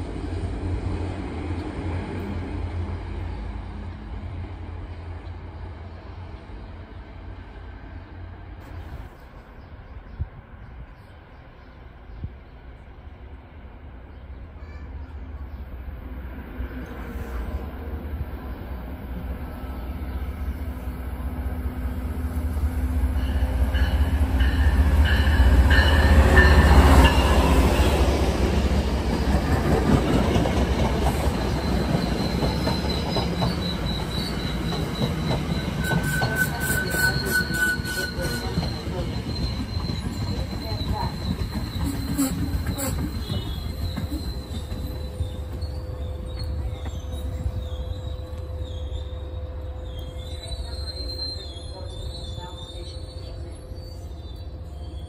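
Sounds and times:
train rumble: 0.0 - 55.0
wheels and brakes squealing: 31.1 - 55.0.

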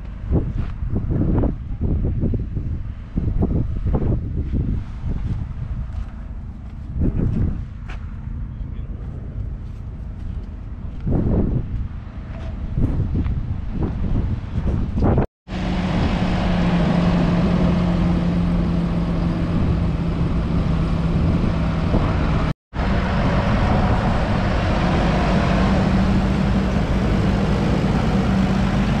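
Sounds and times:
tractor diesel engine running: 15.5 - 29.0.

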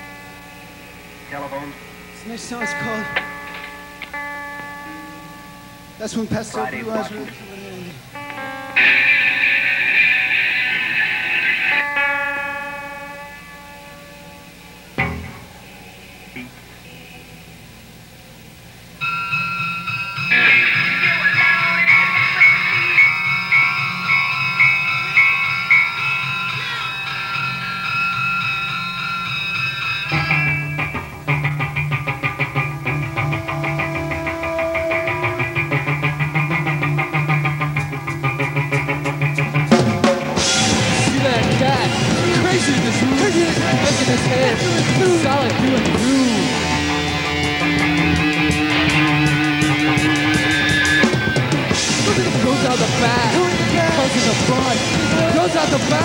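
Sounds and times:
bass guitar: 0.0 - 56.0
electric guitars: 0.0 - 56.0.

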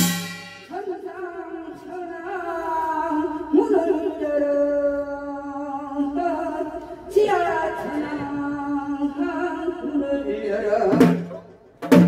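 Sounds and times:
drum and metal percussion: 0.0 - 0.7, 10.9 - 12.0.

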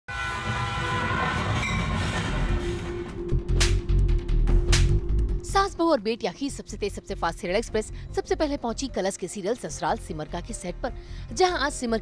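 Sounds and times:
train whistle: 0.1 - 3.3.

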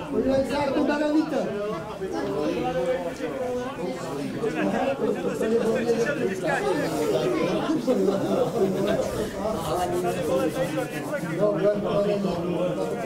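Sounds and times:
people talking over one another: 0.0 - 13.0.

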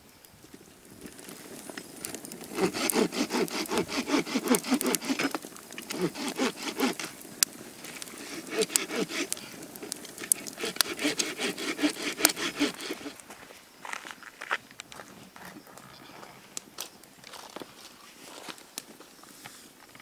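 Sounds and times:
campfire crackling: 0.0 - 20.0.

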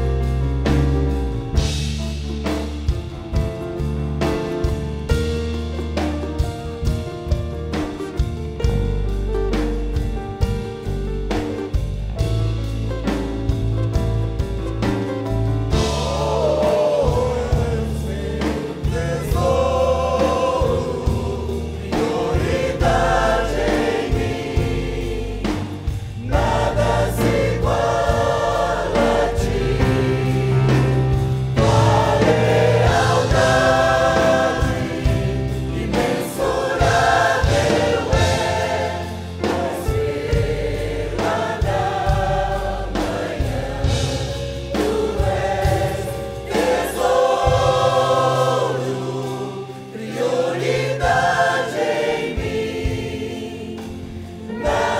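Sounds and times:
mixed choir singing: 15.7 - 54.9.

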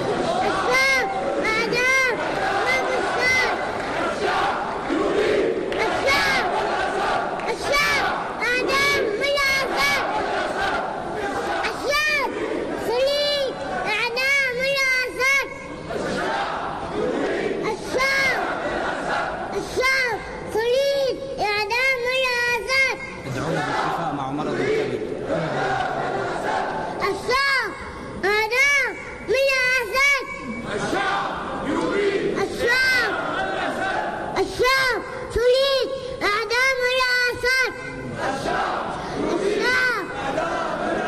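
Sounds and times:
crowd chanting: 0.0 - 20.8, 21.6 - 35.4, 36.4 - 41.0.

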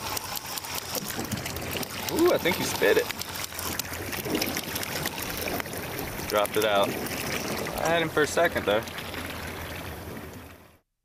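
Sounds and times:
rushing water: 0.0 - 10.8.

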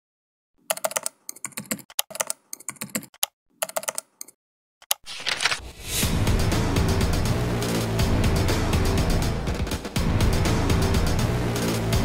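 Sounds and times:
computer keyboard typing: 0.6 - 5.6.

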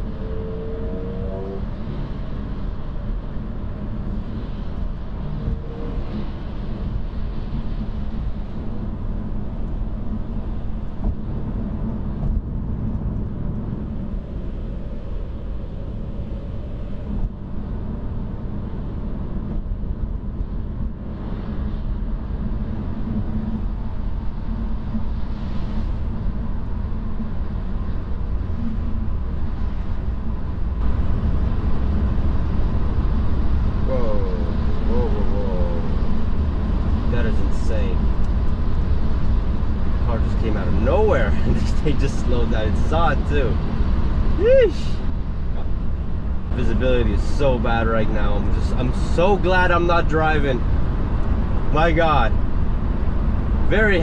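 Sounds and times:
road and tyre noise in car: 0.0 - 54.0.

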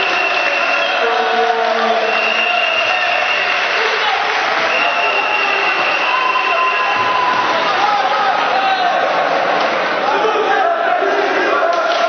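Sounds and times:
crowd clapping: 0.0 - 10.4, 11.0 - 12.0
crowd voices: 0.0 - 12.0.

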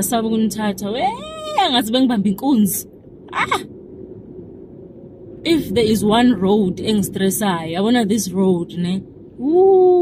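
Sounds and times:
low car cabin rumble: 0.0 - 10.0
woman's wordless vocalising: 1.0 - 1.8, 3.3 - 3.7.

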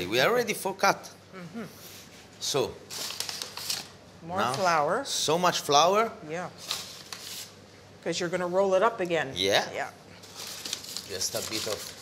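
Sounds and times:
paper bag crinkling: 2.9 - 4.7, 6.6 - 7.6, 10.2 - 12.0.

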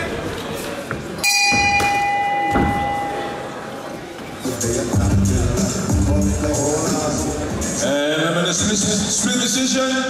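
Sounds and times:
ring bell ringing: 1.2 - 3.4.

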